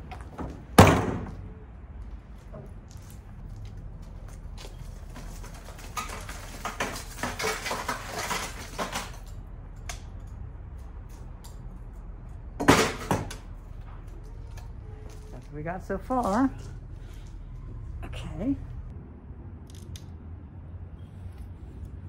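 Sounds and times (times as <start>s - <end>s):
rustling and clinking: 4.6s - 10.4s
metal and glass clatter: 5.4s - 9.4s.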